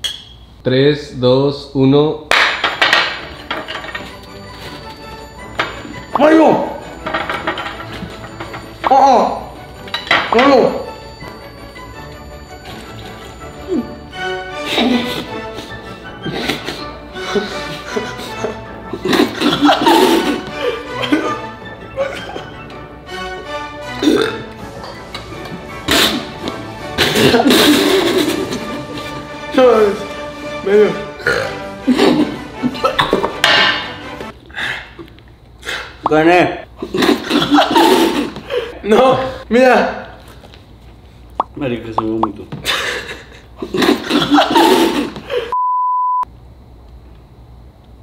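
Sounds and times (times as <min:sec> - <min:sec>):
background music: 0:02.3 - 0:34.4
man burping and spluttering: 0:24.0 - 0:24.5, 0:31.2 - 0:31.6.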